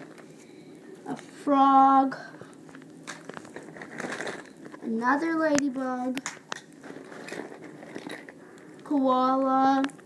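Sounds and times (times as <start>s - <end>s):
rustling and ticking of toys: 2.7s - 10.0s.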